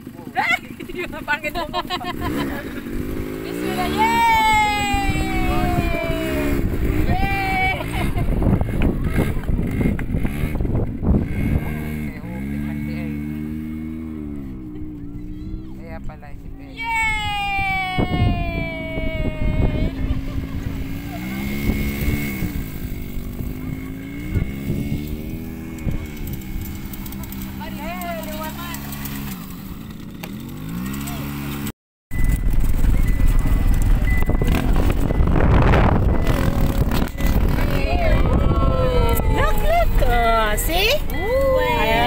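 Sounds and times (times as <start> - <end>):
off-road engine revving: 0.0 - 16.4, 18.0 - 42.0
wind on microphone: 2.9 - 12.3, 17.0 - 27.0, 32.1 - 42.0.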